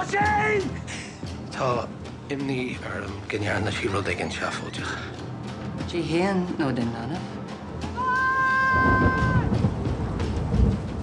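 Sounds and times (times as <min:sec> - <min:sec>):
low rumbling film score: 0:00.0 - 0:11.0.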